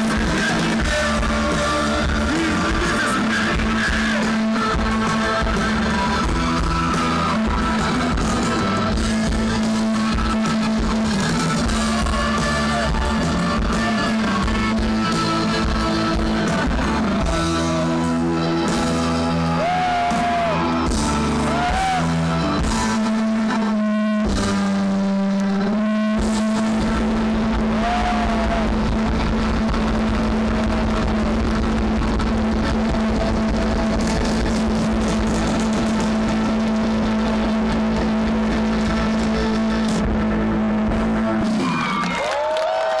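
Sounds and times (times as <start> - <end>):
crowd whistling: 0.0 - 31.4, 41.2 - 43.0
live rock band through pa: 0.0 - 43.0.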